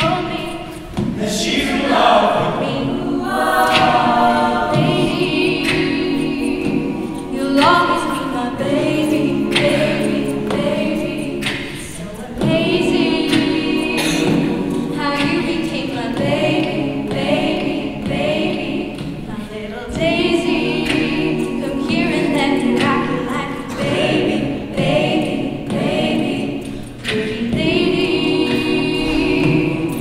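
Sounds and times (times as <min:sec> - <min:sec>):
woman singing lead vocal: 0:00.0 - 0:01.1, 0:01.7 - 0:30.0
backing vocal harmonies: 0:00.0 - 0:30.0.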